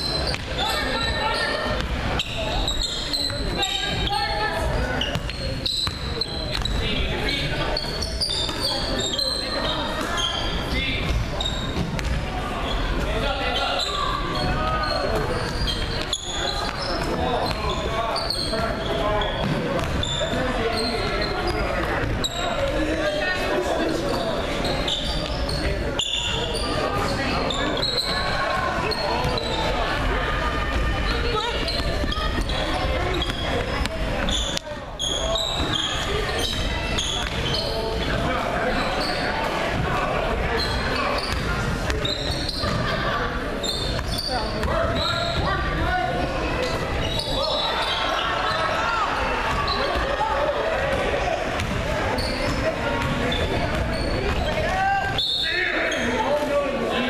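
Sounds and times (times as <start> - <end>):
sneakers squeaking: 0.0 - 57.0
basketball bouncing on court: 5.0 - 6.9, 11.0 - 12.3, 15.3 - 18.5, 19.2 - 20.4, 40.6 - 42.9, 51.5 - 55.2.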